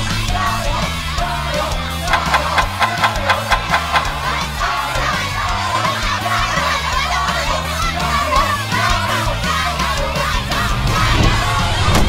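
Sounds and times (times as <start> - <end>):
upbeat music with bass line: 0.0 - 12.0.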